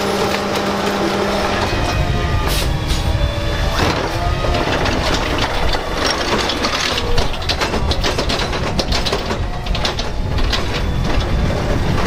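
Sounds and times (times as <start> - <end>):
clanks and rattles of cart: 0.0 - 12.0
garbage truck running: 0.0 - 12.0.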